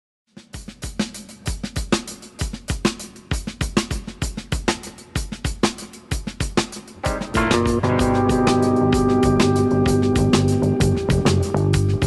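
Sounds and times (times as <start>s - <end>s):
driving drum-kit beat: 0.3s - 12.0s.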